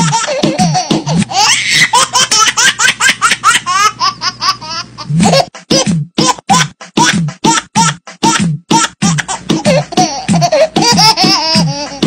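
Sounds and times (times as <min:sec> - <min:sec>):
background music with a beat: 0:00.0 - 0:01.3, 0:05.2 - 0:12.0
high-pitched rapid giggling: 0:00.0 - 0:12.0.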